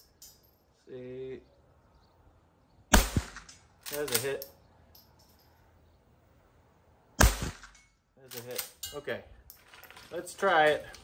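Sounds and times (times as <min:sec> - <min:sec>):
rifle shot with echo: 0:02.9 - 0:03.6, 0:07.2 - 0:07.8.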